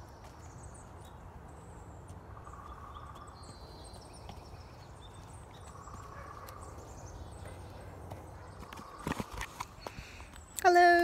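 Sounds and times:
footsteps skipping on dirt: 2.9 - 10.2.

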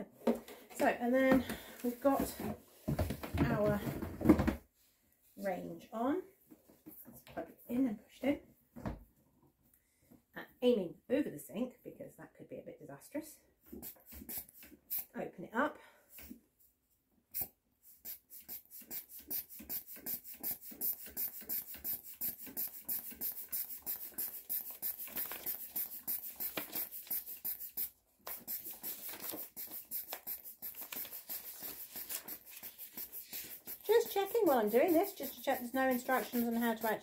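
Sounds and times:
hand pump strokes: 17.4 - 37.0.

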